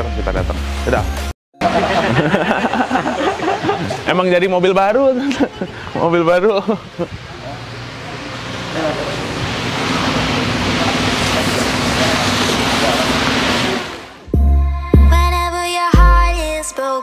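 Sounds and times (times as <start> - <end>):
rushing noise: 6.9 - 14.3
music with heavy bass beat: 14.3 - 16.7.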